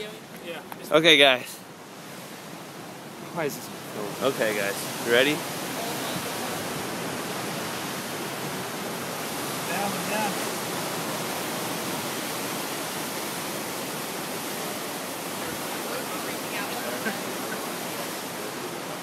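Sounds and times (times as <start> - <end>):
surf breaking against rocks: 0.9 - 19.0.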